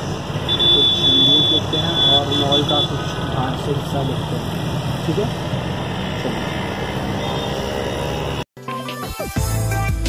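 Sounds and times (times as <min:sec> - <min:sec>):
man speaking: 0:00.8 - 0:05.4.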